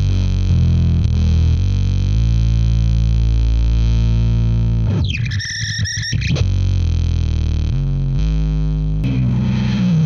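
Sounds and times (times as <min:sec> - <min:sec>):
distorted bass drone: 0:00.0 - 0:10.0.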